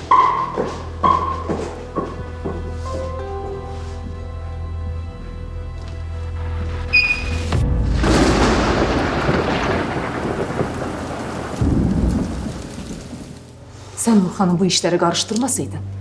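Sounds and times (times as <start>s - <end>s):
music: 0.0s - 10.2s, 11.6s - 16.0s
thunder crash: 7.3s - 13.4s
low rumble of thunder: 7.7s - 13.5s
steady rain: 8.0s - 13.6s.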